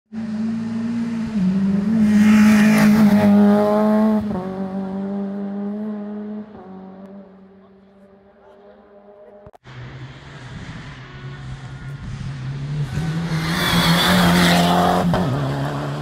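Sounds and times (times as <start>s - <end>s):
rally car passing at speed: 0.1s - 16.0s.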